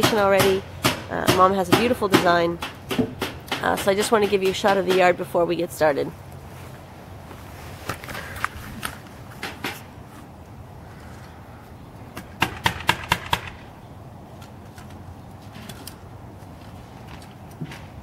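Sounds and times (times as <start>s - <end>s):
sharp knocks: 0.0s - 5.2s
outdoor background noise: 0.0s - 18.0s.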